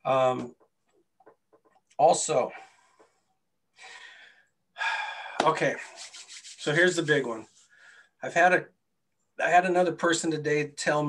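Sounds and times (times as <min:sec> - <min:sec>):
man drawing breath: 0:03.8 - 0:05.4
rubbing noise: 0:05.7 - 0:07.7.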